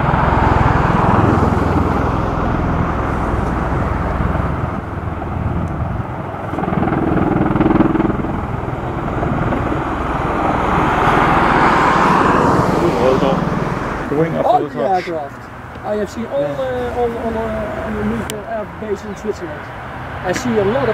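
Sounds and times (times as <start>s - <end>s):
high engine whine: 0.0s - 20.9s
rushing rotor noise: 0.0s - 20.9s.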